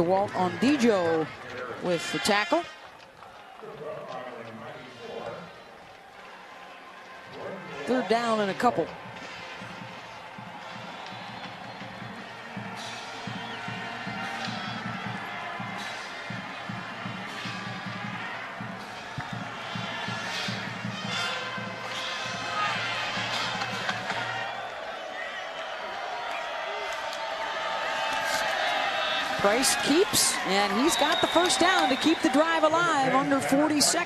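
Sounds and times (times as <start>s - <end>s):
stadium crowd noise: 0.0s - 34.0s.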